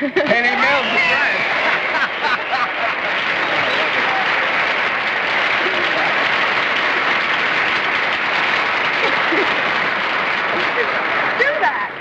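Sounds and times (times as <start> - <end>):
audience applauding: 0.2 - 12.0.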